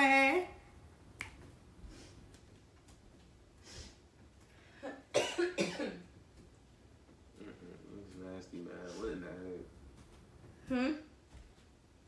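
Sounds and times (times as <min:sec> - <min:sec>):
person coughing: 0:04.9 - 0:06.0.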